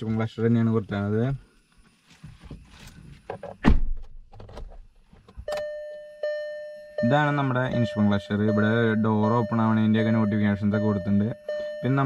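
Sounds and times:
electronic warning chime: 5.5 - 12.0.

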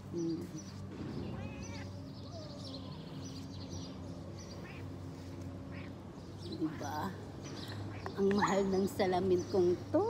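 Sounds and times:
small birds chirping: 0.0 - 10.0
steady low hum: 0.0 - 10.0.

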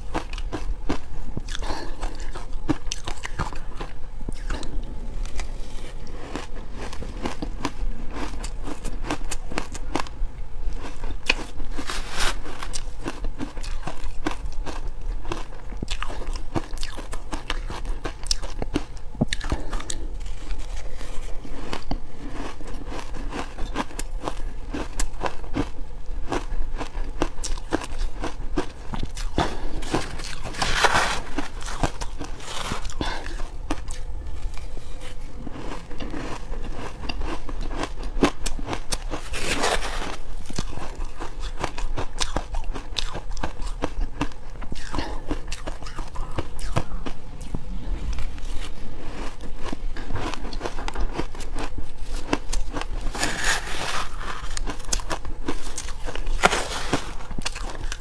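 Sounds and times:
ice being crunched and chewed: 0.0 - 58.0.

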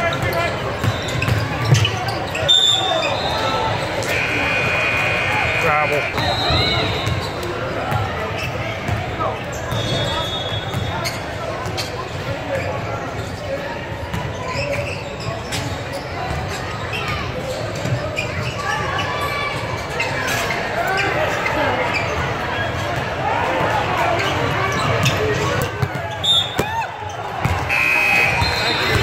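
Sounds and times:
sneaker squeaks: 0.0 - 22.8, 24.2 - 29.0
voices in gym: 0.0 - 29.0.

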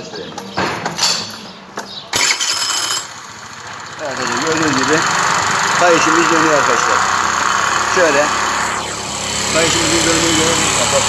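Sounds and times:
scooter engine starting: 2.1 - 11.0.

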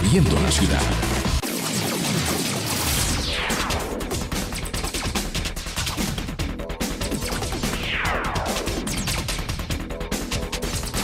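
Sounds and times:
radio jingle music: 0.0 - 2.0, 2.8 - 5.4, 6.4 - 11.0.

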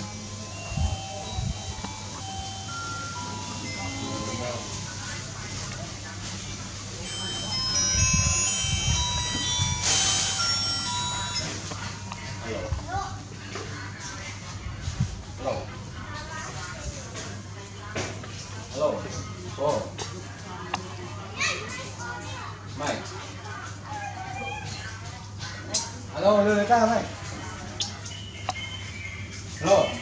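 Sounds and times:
ringing chime tones: 0.1 - 5.1, 7.0 - 12.5.

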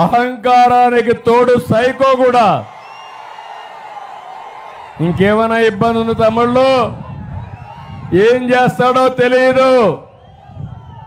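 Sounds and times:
outdoor crowd murmur: 6.9 - 8.2.

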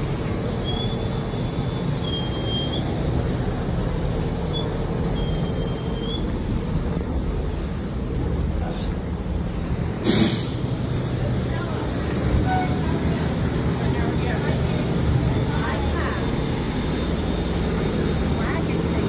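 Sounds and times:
diesel engine idling: 0.0 - 19.0
air brake hiss: 10.0 - 11.0.

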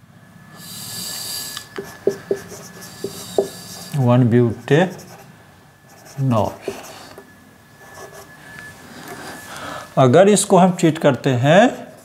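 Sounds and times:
marker squeaking on whiteboard: 1.8 - 4.0, 5.9 - 7.2.

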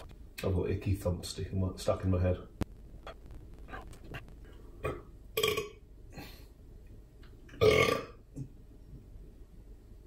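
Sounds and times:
man burping: 4.8 - 6.4, 7.5 - 8.5.

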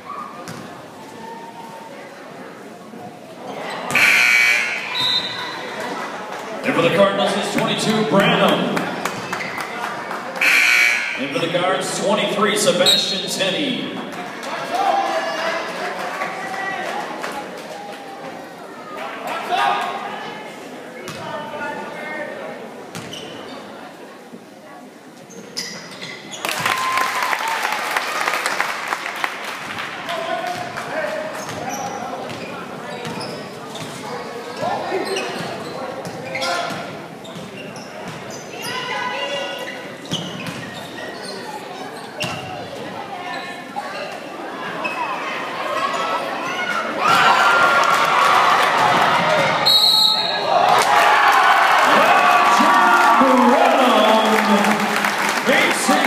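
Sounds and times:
crowd noise burst: 0.0 - 38.7, 39.6 - 56.0
players and spectators shouting: 44.8 - 56.0.

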